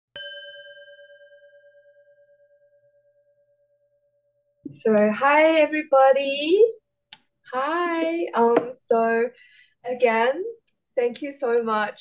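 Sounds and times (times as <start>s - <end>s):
singing bowl ringing: 0.2s - 4.6s.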